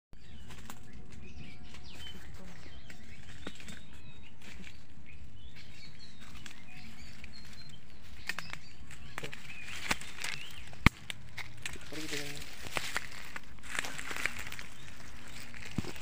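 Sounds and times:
birds chirping: 0.1s - 16.0s
clicks and rustles in dry leaves: 0.2s - 16.0s
steady low rumble: 0.2s - 16.0s.

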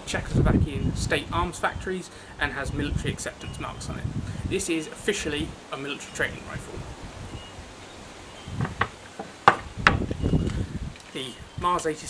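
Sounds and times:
knocks and clicks of wood and metal: 8.6s - 10.4s
rifles bumping and rustling: 8.6s - 10.4s.

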